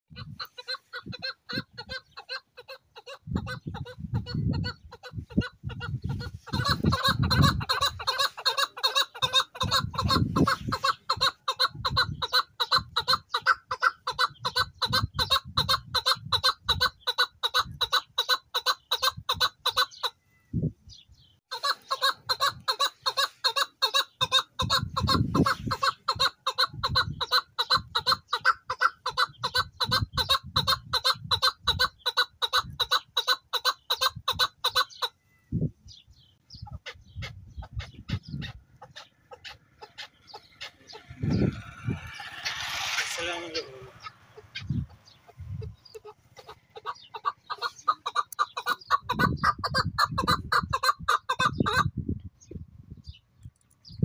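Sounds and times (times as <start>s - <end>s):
partridge chuck calls: 0.1s - 20.2s, 20.9s - 35.2s, 35.9s - 51.9s.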